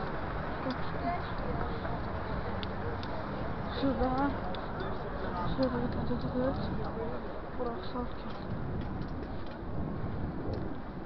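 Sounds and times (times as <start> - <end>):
bicycle rattling on cobblestones: 0.0 - 11.0.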